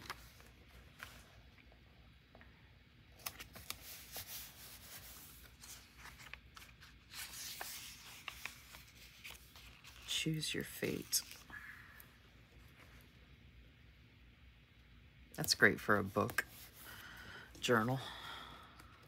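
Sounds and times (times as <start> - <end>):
page turning: 0.0 - 1.4, 3.2 - 11.6.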